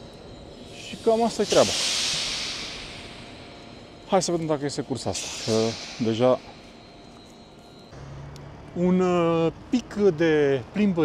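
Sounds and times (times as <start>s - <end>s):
compressed air hissing: 0.0s - 7.9s.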